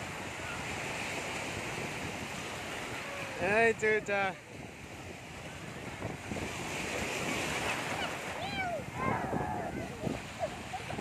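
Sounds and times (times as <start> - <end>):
waves breaking on beach: 0.0 - 11.0.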